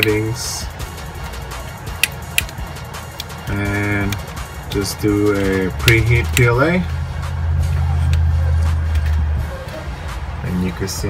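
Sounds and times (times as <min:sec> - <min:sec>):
low hum: 0:00.6 - 0:10.7.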